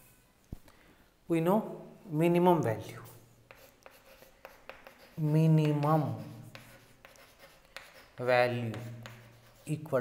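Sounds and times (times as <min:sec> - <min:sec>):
chalk scratching on chalkboard: 0:03.0 - 0:10.0.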